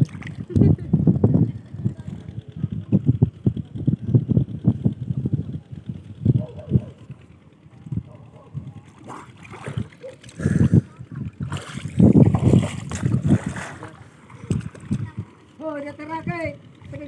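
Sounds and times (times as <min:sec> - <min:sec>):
water sloshing and splashing: 0:00.0 - 0:00.8, 0:08.8 - 0:17.0.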